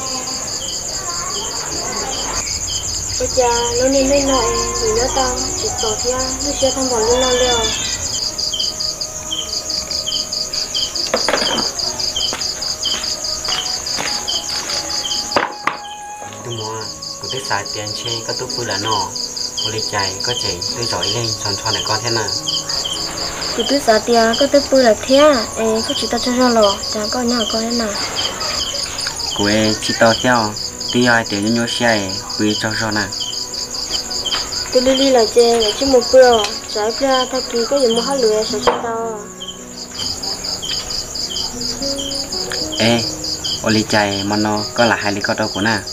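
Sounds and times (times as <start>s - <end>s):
crickets trilling: 0.0s - 45.9s
insect short chirps: 0.0s - 45.9s.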